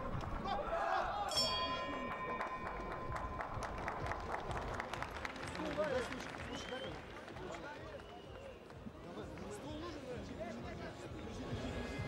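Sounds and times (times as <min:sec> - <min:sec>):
crowd noise: 0:00.0 - 0:12.0
boxing bell ringing: 0:01.3 - 0:04.6
scattered clapping: 0:01.8 - 0:09.9.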